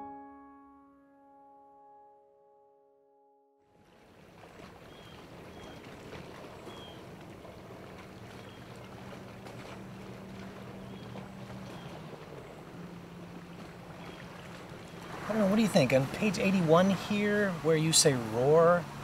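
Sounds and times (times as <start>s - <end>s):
motorboat engine droning: 0.0s - 19.0s
outdoor background noise: 3.8s - 19.0s.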